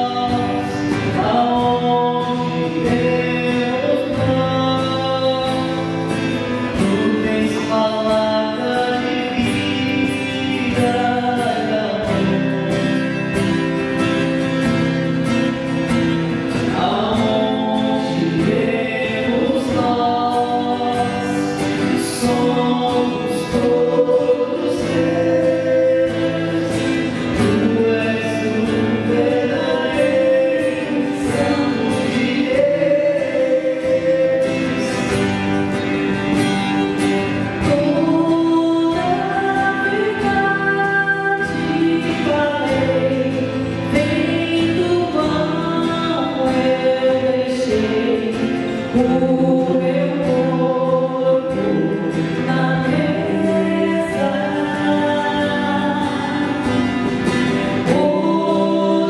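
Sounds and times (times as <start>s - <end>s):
strummed acoustic guitar: 0.0s - 59.0s
woman and man singing a hymn: 0.0s - 59.0s.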